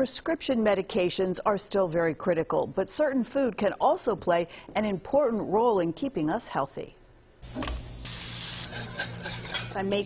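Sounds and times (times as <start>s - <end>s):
whisk beating in metal bowl: 8.6s - 9.8s.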